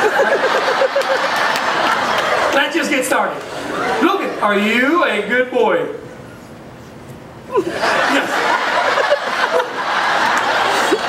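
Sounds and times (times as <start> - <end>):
audience laughing: 0.0 - 2.7, 7.6 - 11.0.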